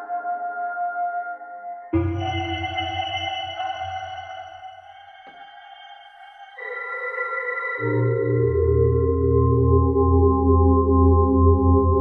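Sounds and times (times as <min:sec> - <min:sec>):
electroacoustic music ringing tones: 0:00.0 - 0:12.0
low drone: 0:07.8 - 0:12.0.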